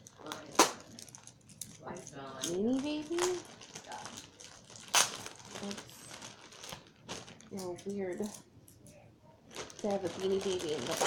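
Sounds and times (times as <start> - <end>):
plastic bag crinkling: 0.0 - 8.4, 9.5 - 11.0.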